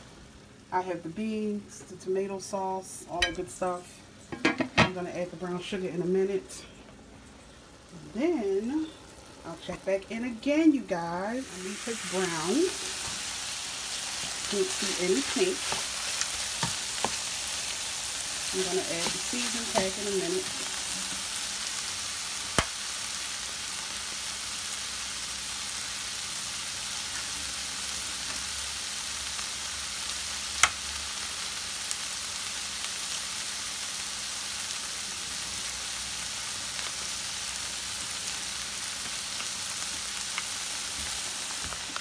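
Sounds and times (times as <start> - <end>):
meat sizzling in frying pan: 7.7 - 42.0.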